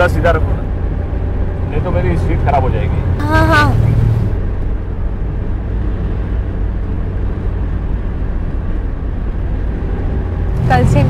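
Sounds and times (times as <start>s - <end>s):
taxi engine and road noise: 0.0s - 11.0s.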